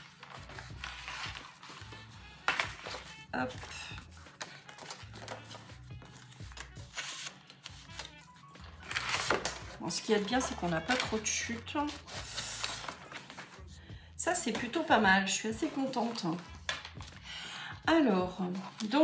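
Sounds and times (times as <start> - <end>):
paper sheets rustling and sliding: 0.0 - 13.6.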